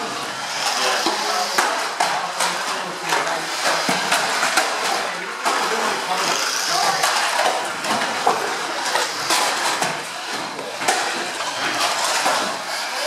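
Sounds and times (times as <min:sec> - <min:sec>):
hubbub of voices: 0:00.0 - 0:13.0
toy cars knocking together: 0:00.1 - 0:13.0.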